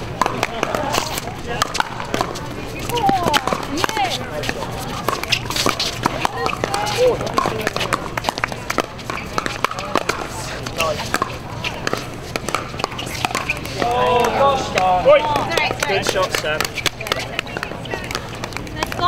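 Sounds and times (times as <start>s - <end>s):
paddles hitting plastic balls: 0.0s - 19.0s
people talking: 0.0s - 19.0s.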